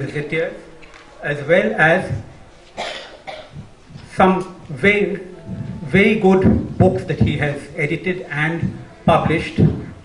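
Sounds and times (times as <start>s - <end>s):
person coughing: 2.8s - 3.6s.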